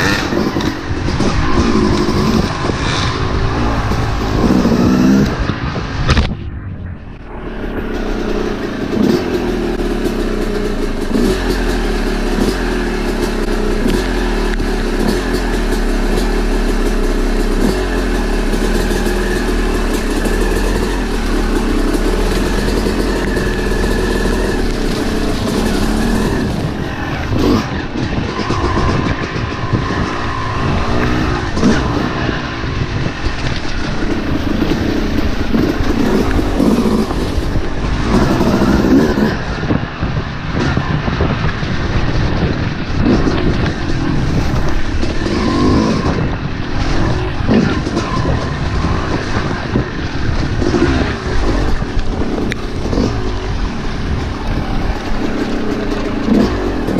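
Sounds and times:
dirt bike engine running: 0.0 - 56.9.

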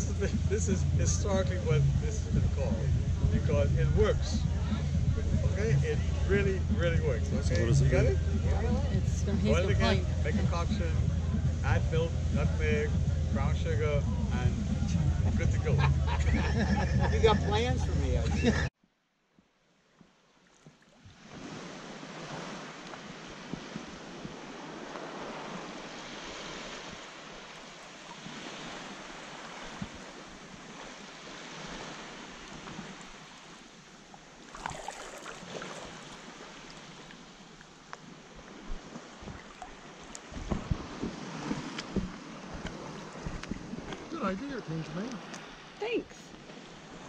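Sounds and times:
wind on microphone: 0.0 - 18.7, 40.3 - 44.1
small waves lapping: 20.0 - 47.0
water sloshing and splashing: 20.4 - 47.0.

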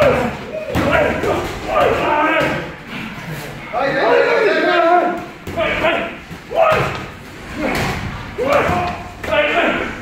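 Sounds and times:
shouts and grunts: 0.0 - 2.8, 3.7 - 10.0.

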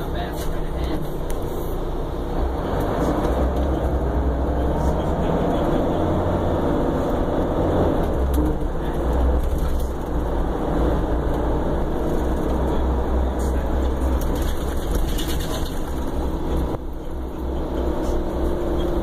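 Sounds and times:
low engine drone: 0.0 - 19.0
road and tyre noise: 0.0 - 19.0.

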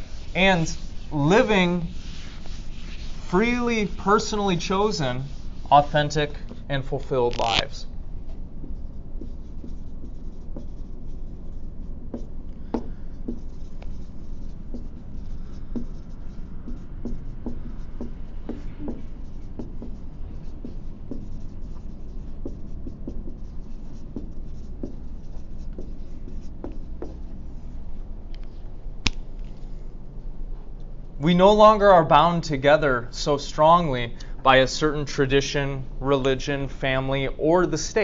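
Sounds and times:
writing on a board: 0.0 - 6.5, 8.3 - 27.4
low room hum: 0.0 - 38.0.

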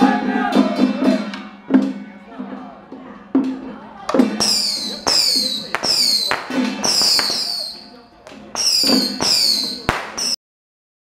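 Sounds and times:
chanting voices: 0.0 - 10.2.

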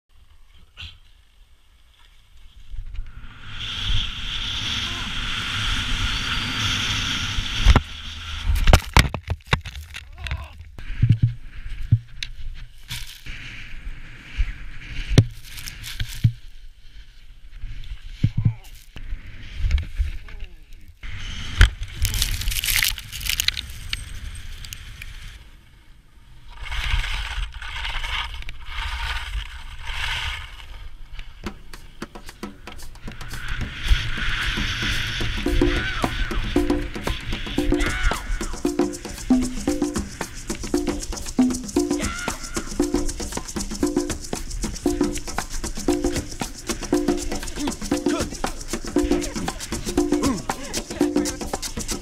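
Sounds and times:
skis scraping over crusty snow: 10.8 - 25.6, 26.3 - 32.0, 33.1 - 36.5.

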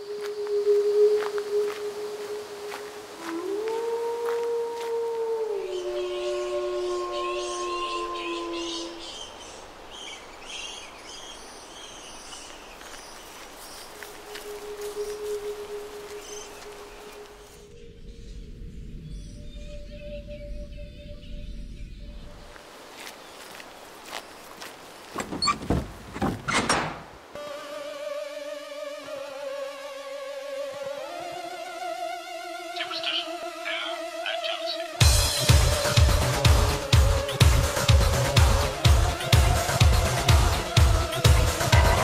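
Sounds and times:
wolves howling: 0.7 - 9.4, 14.0 - 17.6
birds chirping: 5.4 - 22.5, 30.5 - 42.0.

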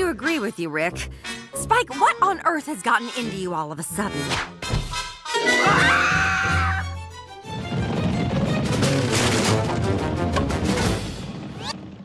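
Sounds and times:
busy action music: 0.0 - 11.5.

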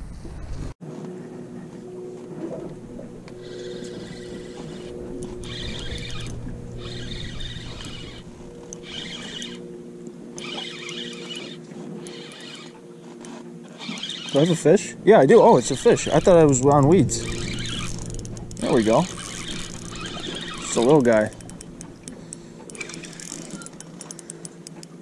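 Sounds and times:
steady low hum: 0.8 - 25.0
fishing reel whirring: 2.6 - 25.0.

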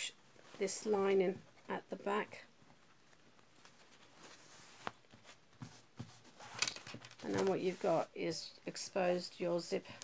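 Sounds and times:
fabric rustling: 0.2 - 1.7, 2.6 - 8.2.

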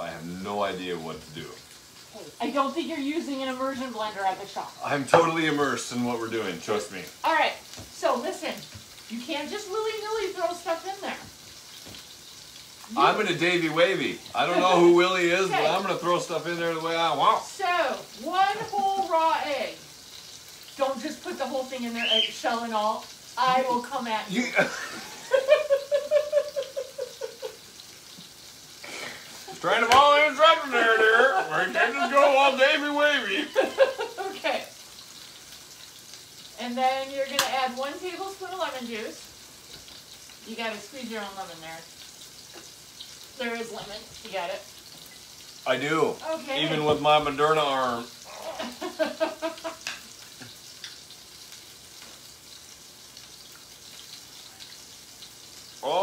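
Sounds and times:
burgers sizzling on grill: 0.0 - 56.0
person laughing: 23.4 - 27.6, 30.6 - 32.3, 33.3 - 34.4, 48.3 - 49.8.

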